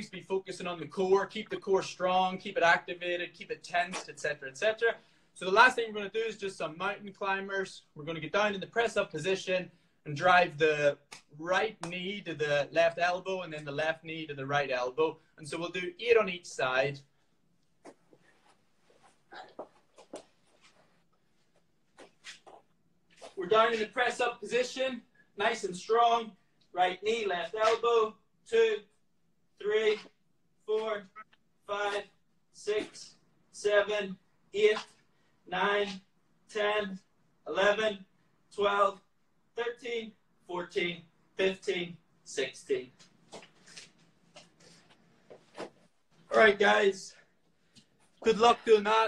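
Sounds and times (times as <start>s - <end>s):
footsteps on hard floor: 17.8s - 21.0s.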